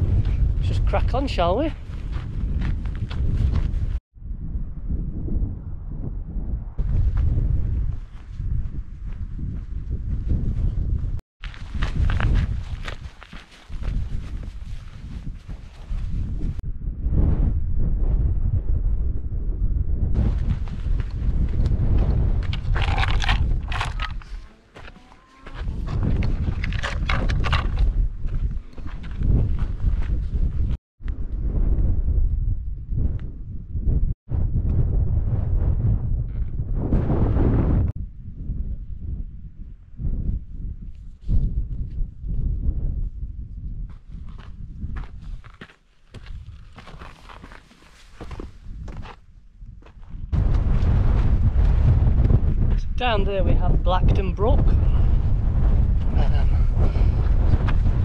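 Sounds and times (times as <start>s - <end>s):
wind buffeting microphone: 0.0s - 58.0s
footsteps on rocky path: 1.8s - 4.0s, 11.4s - 16.5s, 20.2s - 30.8s, 43.9s - 52.8s.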